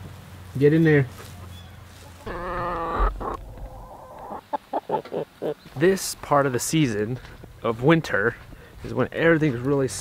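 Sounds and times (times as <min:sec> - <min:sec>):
hen calling: 0:01.2 - 0:05.8.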